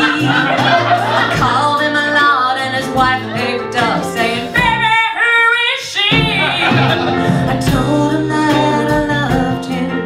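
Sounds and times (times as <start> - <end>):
live band playing: 0.0 - 10.0
woman singing: 0.0 - 10.0.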